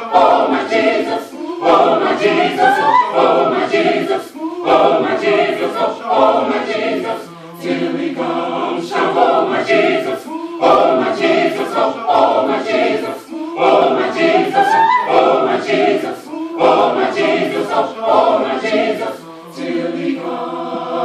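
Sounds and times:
choir breaths: 0:00.0 - 0:21.0
gospel choir singing: 0:00.0 - 0:21.0.

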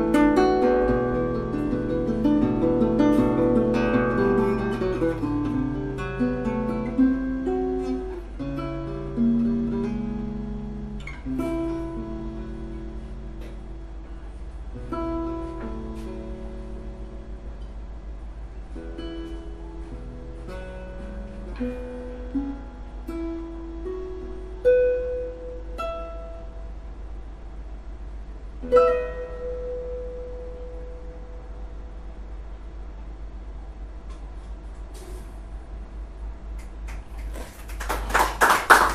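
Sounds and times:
fingerpicked classical guitar: 0:00.0 - 0:27.6, 0:28.5 - 0:32.1.

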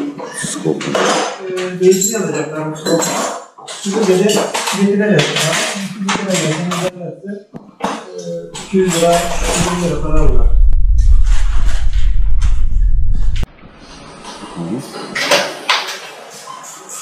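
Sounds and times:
person talking: 0:08.2 - 0:11.6
low hum: 0:08.5 - 0:13.6.

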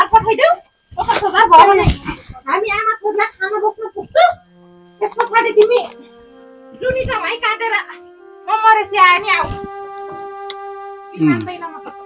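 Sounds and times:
soft background music: 0:02.4 - 0:12.0.

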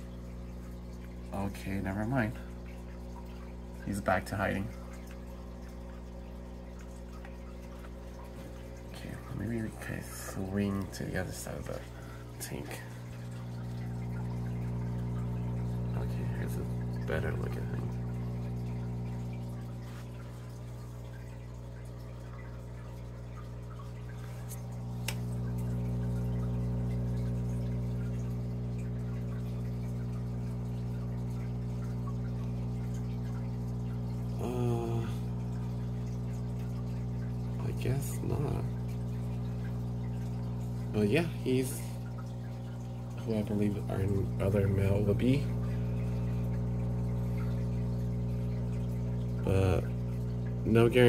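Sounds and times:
low equipment hum: 0:00.0 - 0:51.0
water bubbling: 0:00.0 - 0:51.0.

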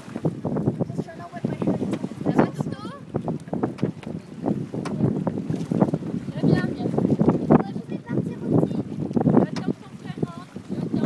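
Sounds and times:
wind buffeting microphone: 0:00.0 - 0:11.0
people talking indistinctly: 0:00.7 - 0:11.0.

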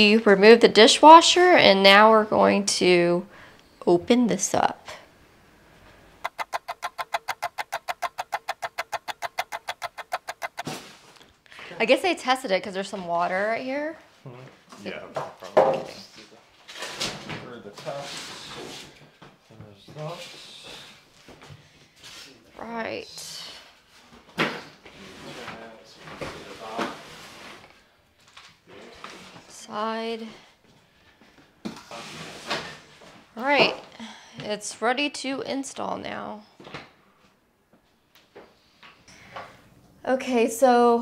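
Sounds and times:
rapid clock ticking: 0:06.3 - 0:10.6.

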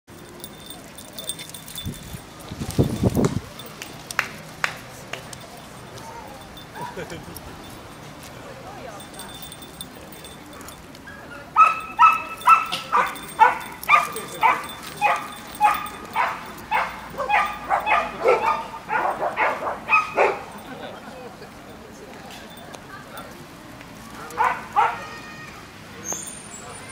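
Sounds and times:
small metal pieces jingling: 0:00.1 - 0:03.8, 0:05.3 - 0:08.3, 0:08.9 - 0:11.0, 0:11.8 - 0:18.2
small dog barking: 0:11.6 - 0:20.5, 0:24.3 - 0:25.1.

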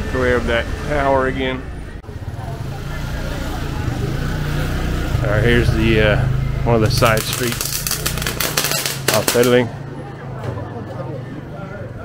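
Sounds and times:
small motorcycle engine: 0:02.1 - 0:09.0.

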